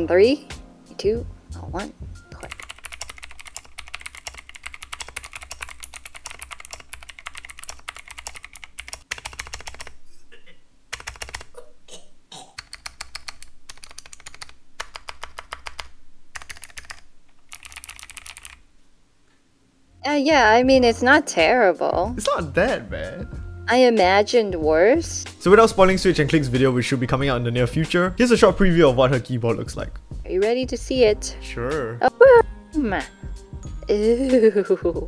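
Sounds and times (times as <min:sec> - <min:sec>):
rapid mechanical keyboard typing: 0:02.4 - 0:10.0, 0:10.9 - 0:11.5, 0:12.6 - 0:18.6.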